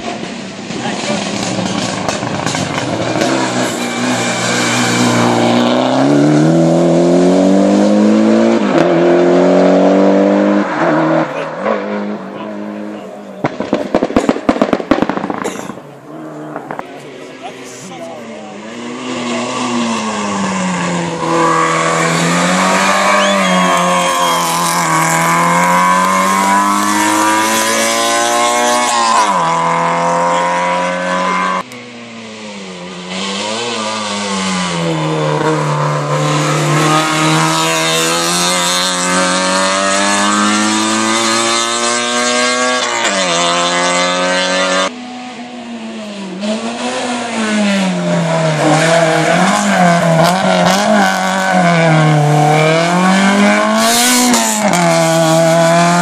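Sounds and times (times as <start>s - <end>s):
race car engines revving: 0.0s - 56.0s.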